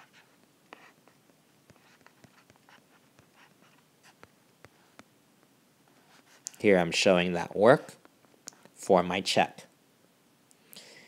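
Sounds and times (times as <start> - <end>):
stylus tapping and scratching: 0.0 - 6.6.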